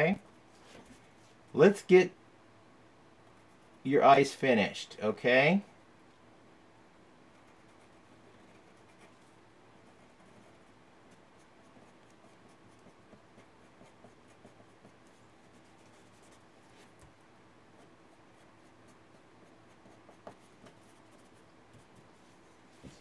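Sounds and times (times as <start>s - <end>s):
pencil scratching on paper: 7.3s - 16.4s, 18.4s - 22.0s.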